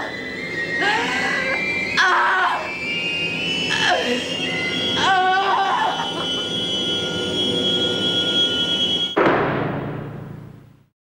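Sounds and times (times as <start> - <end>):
woman sobbing and wailing: 0.8 - 2.7, 5.0 - 6.6.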